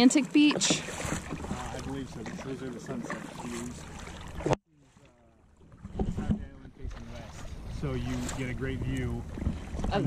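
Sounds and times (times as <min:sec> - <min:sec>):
sharp splashes: 0:00.0 - 0:06.0, 0:06.7 - 0:10.0
paddle strokes in water: 0:00.0 - 0:10.0
wind rumbling on microphone: 0:05.9 - 0:10.0.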